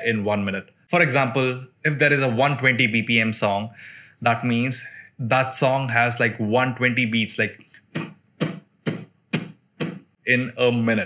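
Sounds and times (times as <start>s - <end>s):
hand claps: 7.9s - 10.1s.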